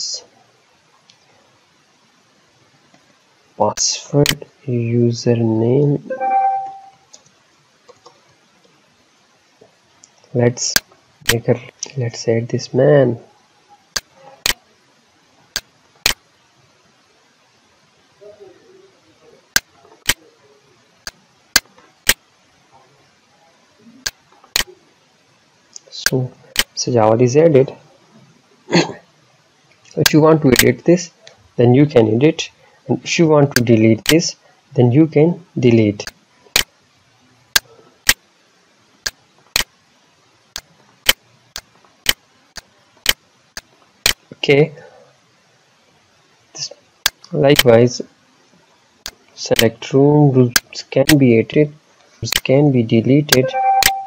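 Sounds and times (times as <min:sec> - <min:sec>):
faint background hiss: 0:00.0 - 0:54.0.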